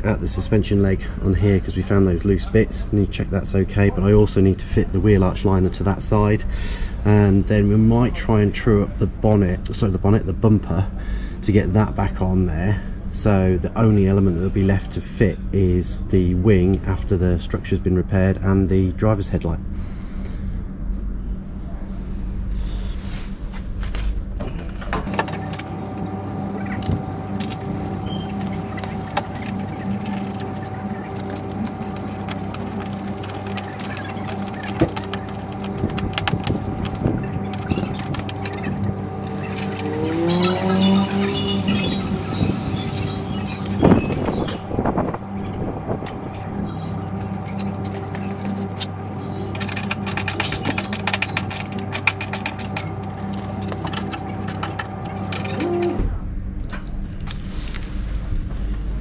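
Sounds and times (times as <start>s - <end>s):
steady hum: 0.0s - 59.0s.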